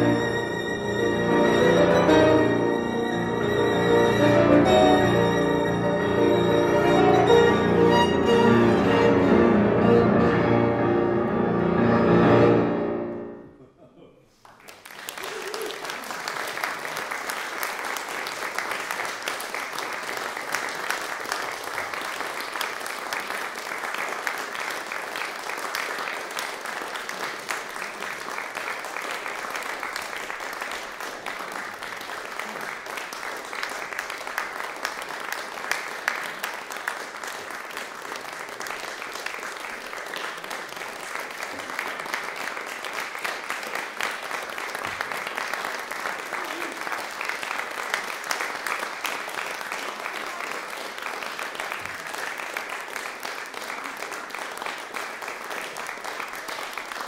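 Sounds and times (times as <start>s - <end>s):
audience applauding: 0.0s - 9.4s, 14.3s - 57.0s.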